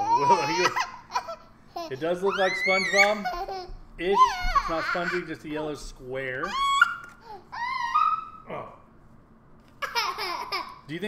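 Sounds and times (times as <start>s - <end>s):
young child squealing: 0.0s - 1.0s, 2.2s - 3.5s, 4.1s - 5.3s, 6.4s - 8.5s
child crying: 0.0s - 5.3s, 6.4s - 8.5s.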